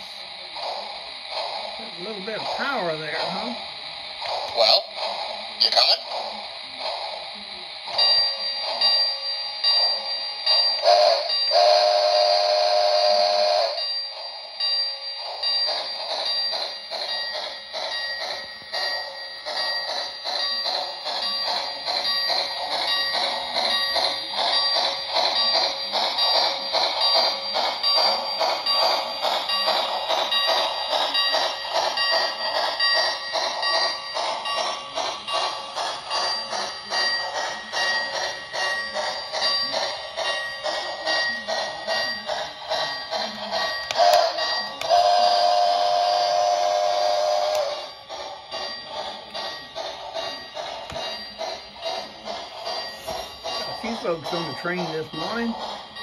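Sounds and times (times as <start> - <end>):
rhythmic train chuffing: 0.0 - 56.0
steam whistle: 10.9 - 13.8, 44.9 - 47.8
bell ringing: 13.6 - 45.1, 47.7 - 56.0.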